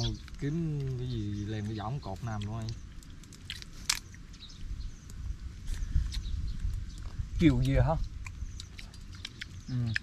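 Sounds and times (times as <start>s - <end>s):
chewing: 0.0s - 10.0s
shell cracking: 2.4s - 4.2s.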